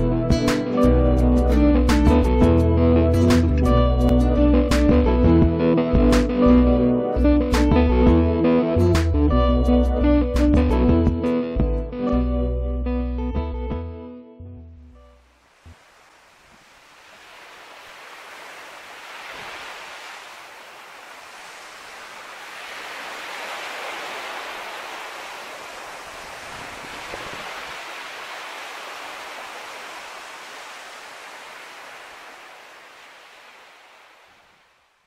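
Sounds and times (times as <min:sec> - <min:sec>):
small waves washing onto sand: 0:15.3 - 0:35.0.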